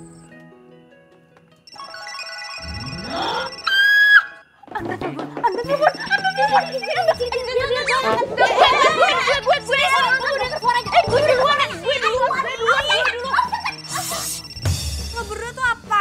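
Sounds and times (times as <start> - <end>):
background music: 0.0 - 16.0
women shrieking and talking: 5.7 - 14.4.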